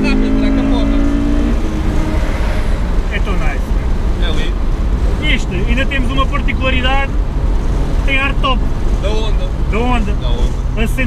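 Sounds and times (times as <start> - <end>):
car engine: 0.0 - 11.0
road and wind noise: 0.0 - 11.0.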